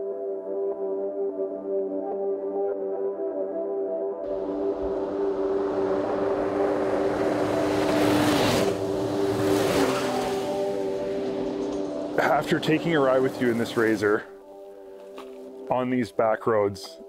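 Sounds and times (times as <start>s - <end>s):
off-road vehicle driving past: 4.3s - 14.4s.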